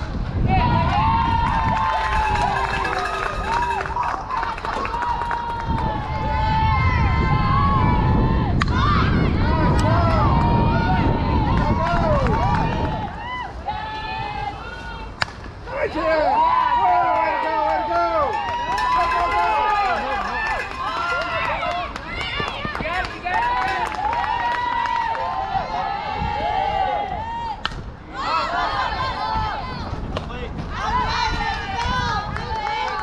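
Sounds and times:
crowd yelling and cheering: 0.0s - 33.0s.

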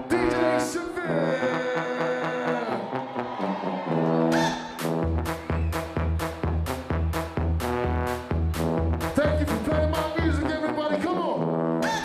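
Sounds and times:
brassy synth lead: 0.0s - 12.0s
electronic dance music: 0.0s - 12.0s.

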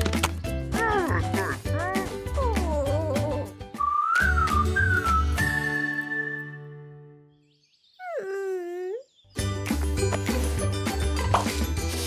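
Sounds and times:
cartoon character sad moan: 8.0s - 9.0s.

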